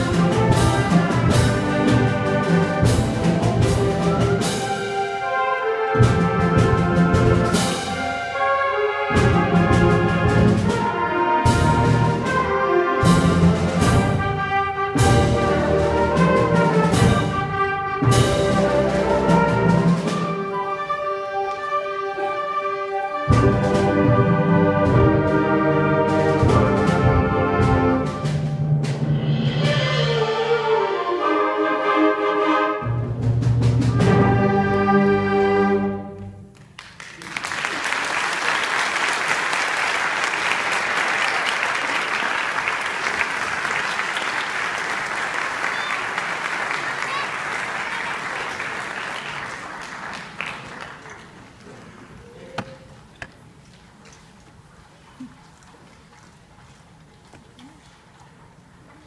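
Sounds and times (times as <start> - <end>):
concert band playing: 0.0 - 36.4
audience applauding: 36.5 - 52.9.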